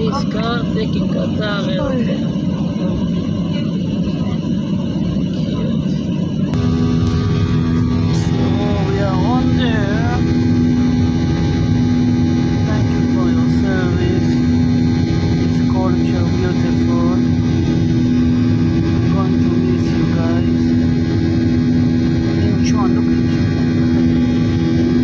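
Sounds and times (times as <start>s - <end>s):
jet engine rumble on ground: 0.0s - 25.0s
jet engines droning: 0.0s - 25.0s
steady tones hum: 0.0s - 25.0s.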